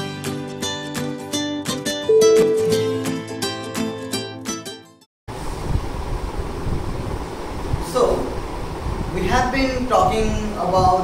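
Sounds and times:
microphone hiss and low rumble: 5.3 - 11.0.

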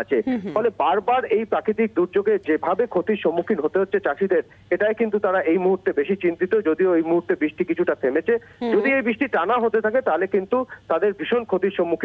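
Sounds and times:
man speaking over telephone: 0.0 - 12.0.

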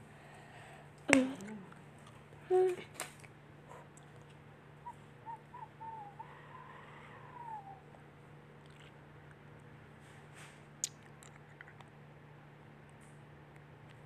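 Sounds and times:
person humming: 1.1 - 1.8, 2.5 - 2.9.

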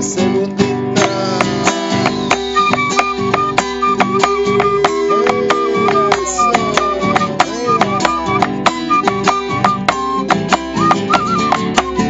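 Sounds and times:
nylon-string guitar: 0.0 - 12.0
flute melody: 1.0 - 12.0
hand claps: 1.0 - 12.0.

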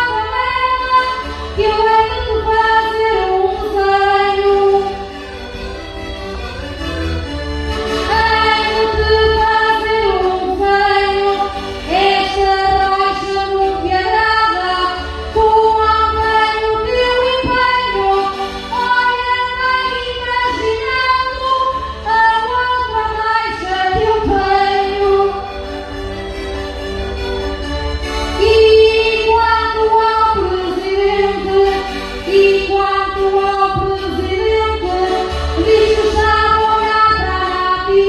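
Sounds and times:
woman singing through microphone: 0.0 - 5.0, 8.1 - 25.4, 28.4 - 38.0
instrumental accompaniment: 0.0 - 38.0.

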